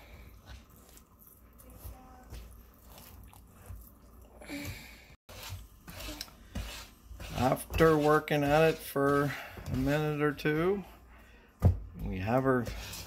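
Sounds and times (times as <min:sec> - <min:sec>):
spoon stirring sticky mixture: 0:00.0 - 0:04.4, 0:05.3 - 0:11.0.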